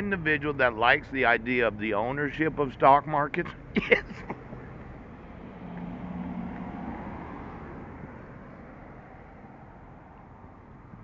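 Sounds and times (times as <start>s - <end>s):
motor vehicle passing: 3.5s - 11.0s.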